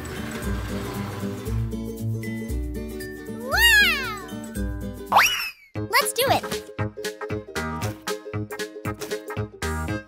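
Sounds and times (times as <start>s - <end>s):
pitched rising call: 3.4s - 4.4s.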